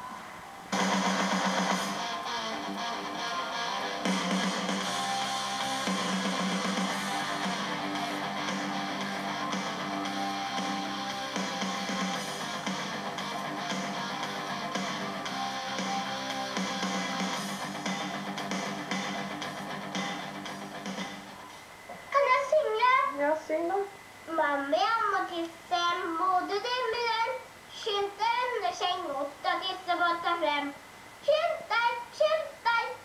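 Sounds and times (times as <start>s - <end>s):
guitar background music: 0.7s - 21.4s.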